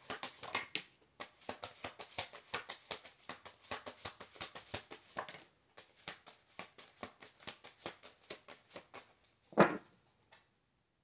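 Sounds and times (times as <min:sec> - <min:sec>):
cards being shuffled: 0:00.0 - 0:09.2.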